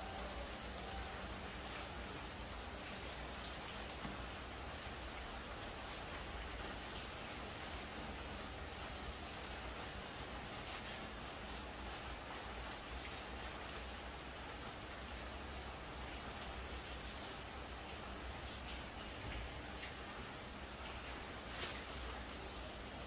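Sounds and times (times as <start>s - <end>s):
steady background hiss: 0.0s - 23.0s.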